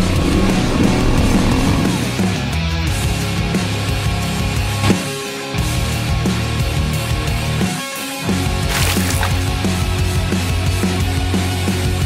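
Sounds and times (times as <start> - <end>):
loud hard rock music: 0.3 - 12.0.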